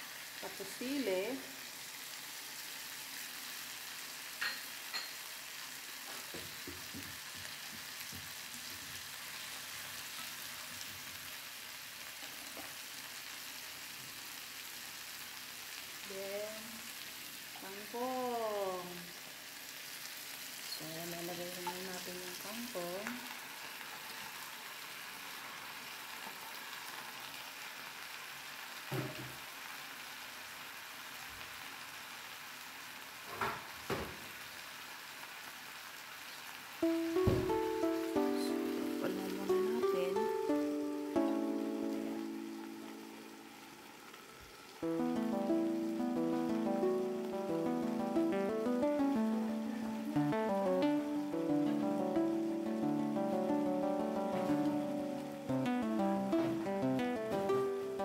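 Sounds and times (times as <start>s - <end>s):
food sizzling in wok: 0.0s - 58.0s
background voice: 49.0s - 52.2s.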